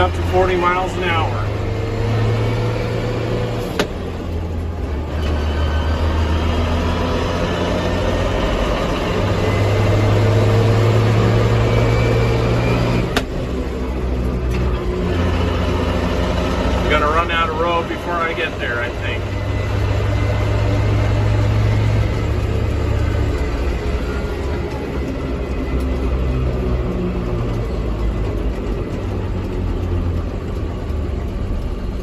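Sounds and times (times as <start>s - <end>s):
tractor diesel engine under load: 0.0s - 32.0s.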